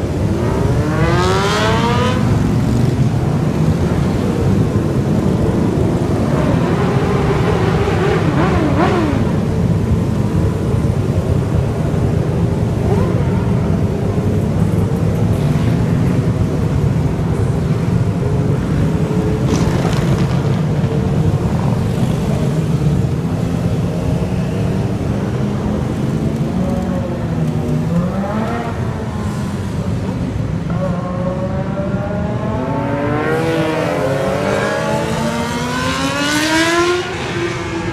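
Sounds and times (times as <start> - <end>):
motorcycles revving: 0.0 - 37.9.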